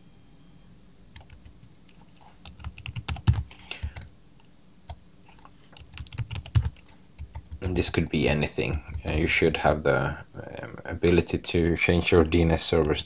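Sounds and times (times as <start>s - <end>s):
computer keyboard typing: 1.1s - 4.1s, 4.9s - 7.9s, 8.6s - 9.2s.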